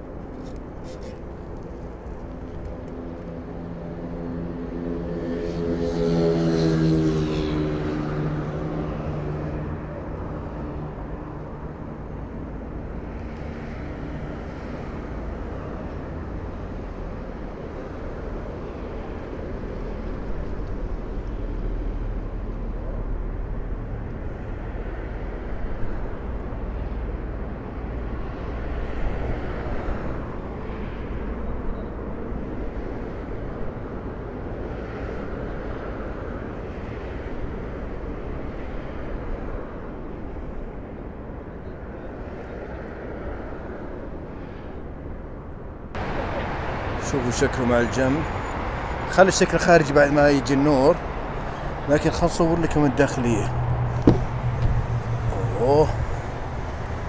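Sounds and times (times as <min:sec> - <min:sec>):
electric vehicle hum: 0:52.7 - 0:57.0
low rumble: 0:53.4 - 0:57.0.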